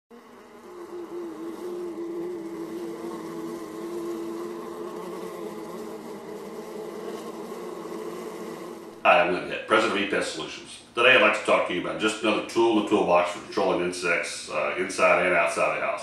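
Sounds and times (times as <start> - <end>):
flying insect buzzing: 0.1 - 9.3.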